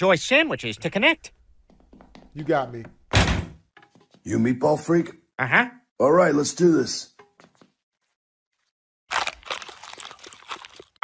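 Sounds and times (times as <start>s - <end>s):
dense crunching and crackling: 9.1s - 11.0s.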